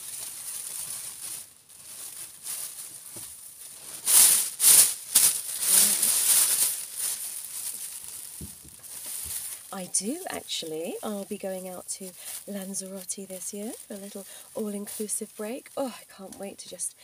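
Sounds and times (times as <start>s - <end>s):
plastic apron rustling and crinkling: 0.0s - 17.0s.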